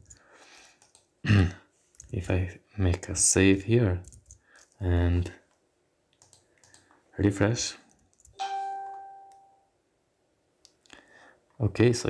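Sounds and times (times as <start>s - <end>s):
bell-like chime: 8.4s - 9.7s.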